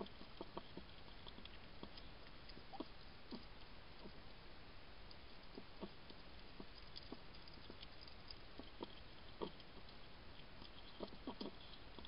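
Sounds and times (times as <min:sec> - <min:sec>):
hedgehog chewing and smacking: 0:00.0 - 0:12.0.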